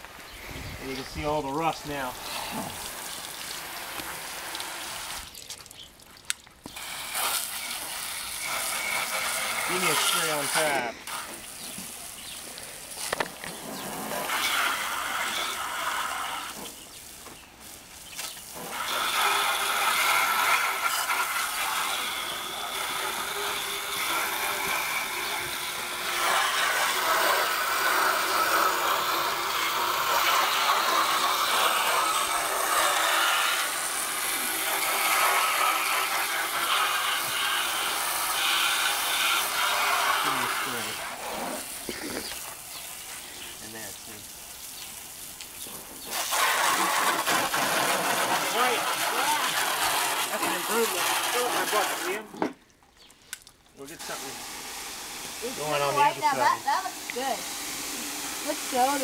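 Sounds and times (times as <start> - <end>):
hose nozzle hissing: 0.0 - 5.8, 6.6 - 52.4, 53.9 - 59.0
water jet beating on car: 0.8 - 52.5, 53.8 - 59.0.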